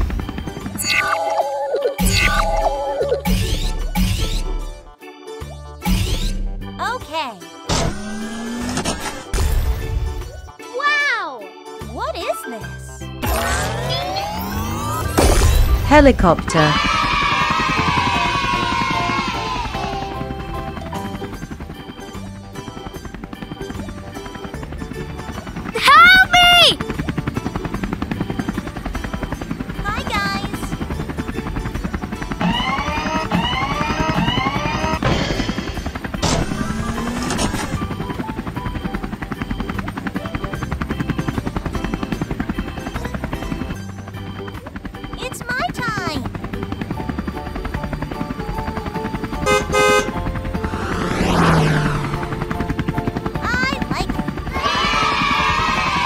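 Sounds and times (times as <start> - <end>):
cartoon helicopter rotor chop: 0.0 - 4.9, 5.8 - 6.6, 7.7 - 10.5, 13.2 - 56.0
background music: 0.0 - 56.0.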